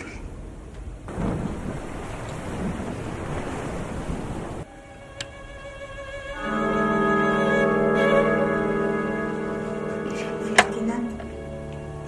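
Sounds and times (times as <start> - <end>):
wind noise: 0.3 - 4.7
thunder rumble: 0.4 - 4.7.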